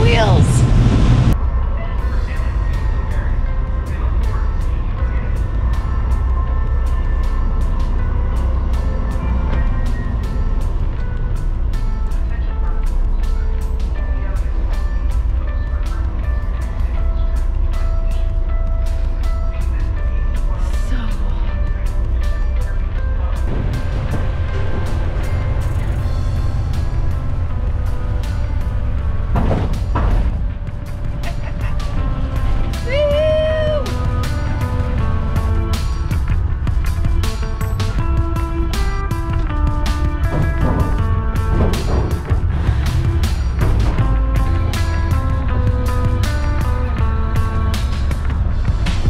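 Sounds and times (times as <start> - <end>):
wind buffeting microphone: 0.0 - 1.4
low steady rumble: 0.0 - 49.0
background music with beat: 1.3 - 49.0.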